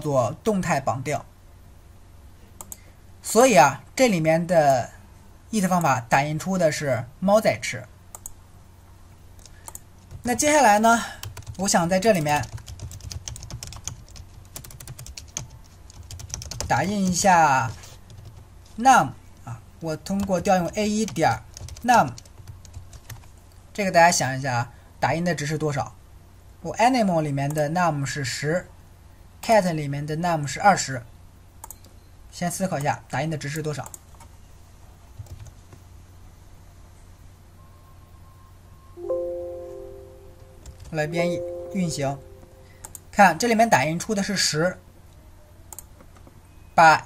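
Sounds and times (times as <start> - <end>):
low steady hum: 0.0 - 47.0
computer keyboard typing: 9.4 - 18.8, 20.1 - 23.4, 35.2 - 35.7, 40.6 - 41.1, 42.8 - 43.0.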